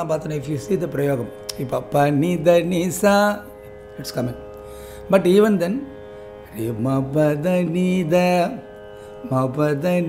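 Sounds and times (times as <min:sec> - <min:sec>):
faint steady drone: 0:00.0 - 0:10.0.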